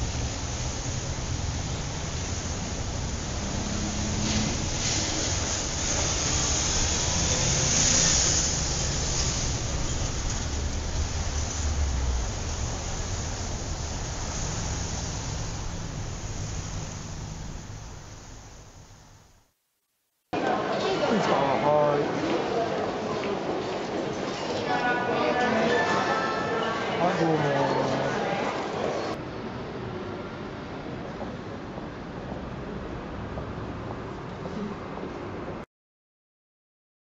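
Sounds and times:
wind and road noise: 0.0s - 19.4s, 28.6s - 35.6s
low engine hum: 5.6s - 19.3s.

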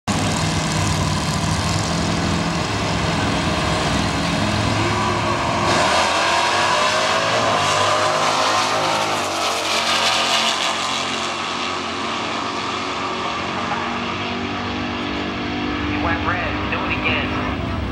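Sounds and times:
drag racing car engines: 0.1s - 17.9s.

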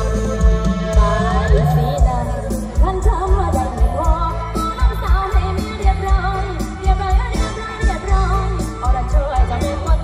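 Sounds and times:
sung melody with sliding pitch: 0.0s - 10.0s.

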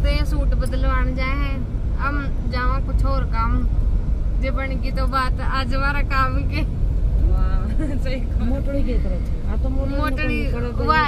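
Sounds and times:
car interior rumble: 0.0s - 11.0s
woman talking: 7.3s - 11.0s.

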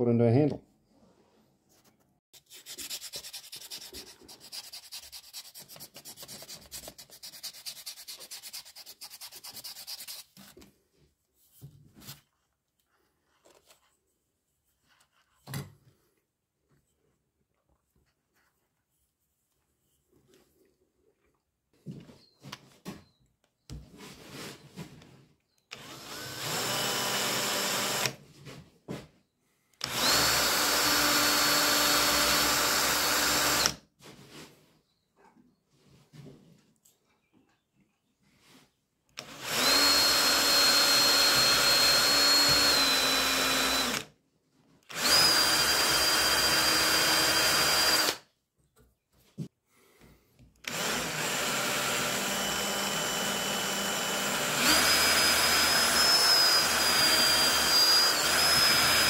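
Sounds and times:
cordless drill boring into wood: 25.7s - 28.2s, 29.8s - 33.8s, 39.2s - 44.1s, 44.9s - 48.2s, 50.6s - 59.0s.

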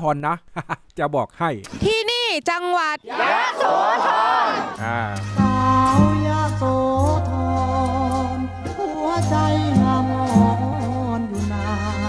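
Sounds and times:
crowd shouting a cheer: 3.0s - 5.4s.

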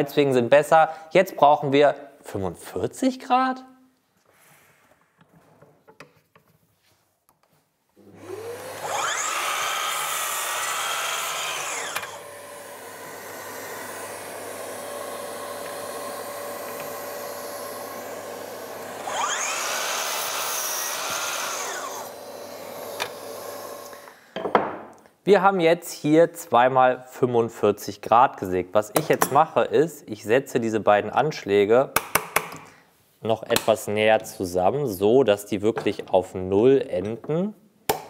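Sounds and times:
saw motor winding up: 8.1s - 24.2s
saw blade cutting wood: 8.7s - 12.6s, 18.4s - 24.0s.

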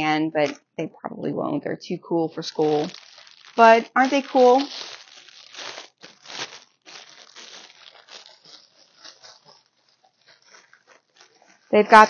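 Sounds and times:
plastic packaging crinkling: 2.2s - 12.0s.

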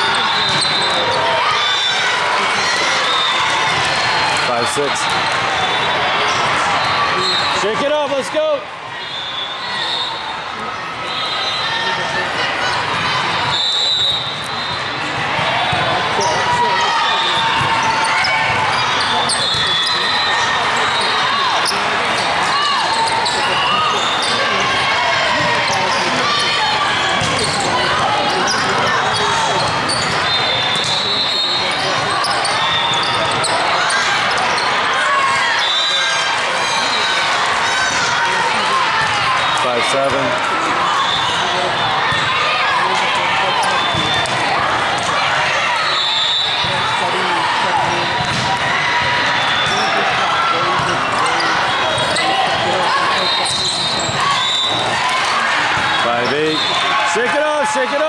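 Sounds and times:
ball struck and bouncing: 48.2s - 48.6s.

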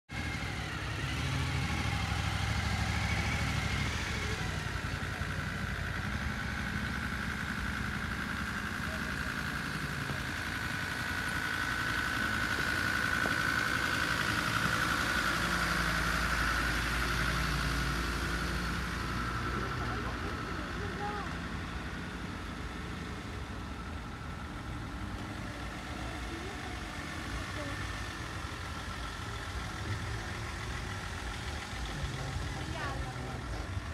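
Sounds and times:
vehicle engines at low speed: 0.0s - 33.9s.

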